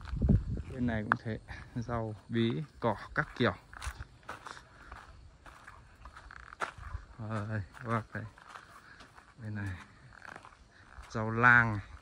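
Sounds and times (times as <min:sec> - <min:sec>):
footsteps on dirt: 0:00.0 - 0:12.0.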